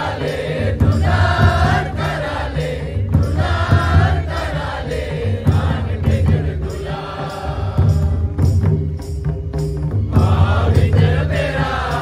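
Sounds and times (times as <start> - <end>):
group singing together: 0.0 - 8.7, 10.1 - 12.0
folk hand drums beat: 0.0 - 12.0.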